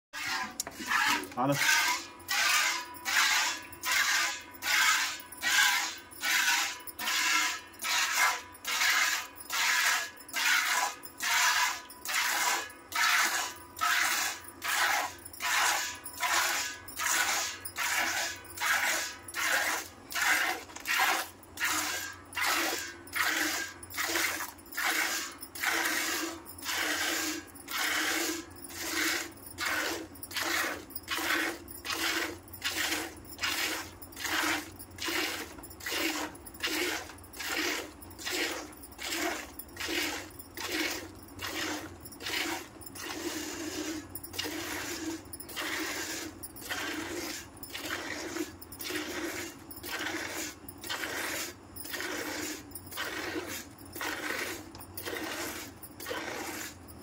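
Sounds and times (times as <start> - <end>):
milk squirting into metal pail: 0.2 - 56.7.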